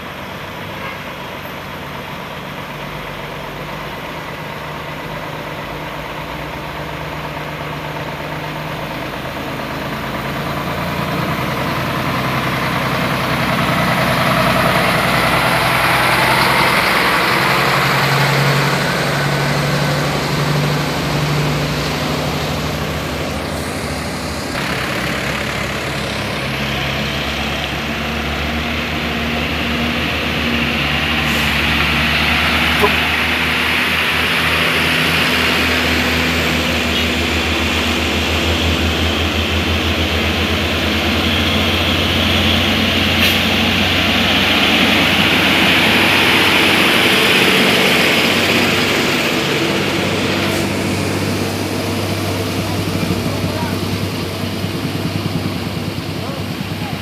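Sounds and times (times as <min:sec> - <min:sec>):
diesel truck engines: 0:00.0 - 0:57.0
truck passing: 0:00.0 - 0:57.0.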